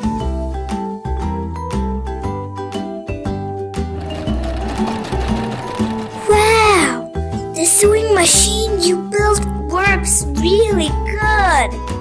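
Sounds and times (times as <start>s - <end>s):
cheerful background music: 0.0s - 12.0s
sewing machine whirring: 3.9s - 7.4s.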